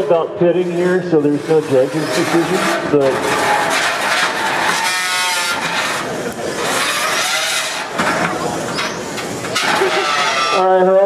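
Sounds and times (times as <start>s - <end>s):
robot motors rasping: 0.6s - 11.0s.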